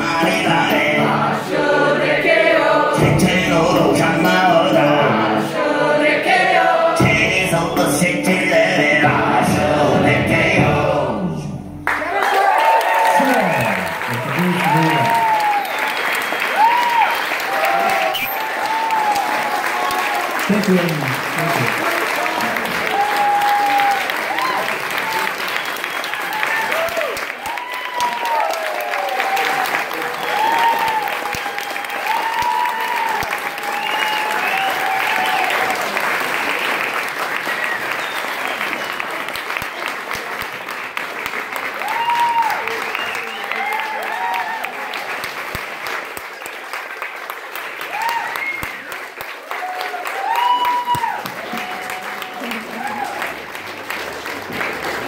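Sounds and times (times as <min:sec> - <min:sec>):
crowd cheering and whooping: 0:11.8 - 0:20.8, 0:21.4 - 0:39.3, 0:41.7 - 0:45.3, 0:47.8 - 0:53.5
audience applauding: 0:11.8 - 0:55.0.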